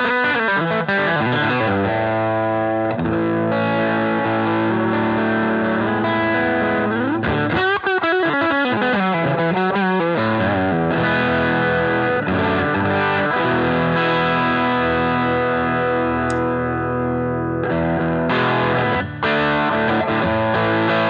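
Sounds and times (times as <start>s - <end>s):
overdriven electric guitar: 0.0s - 21.0s.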